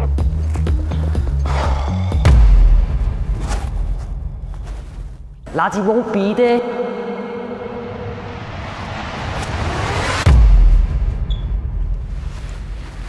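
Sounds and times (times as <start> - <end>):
rising noise swell: 5.5 - 10.9
deep bass boom rumbling: 6.6 - 12.3.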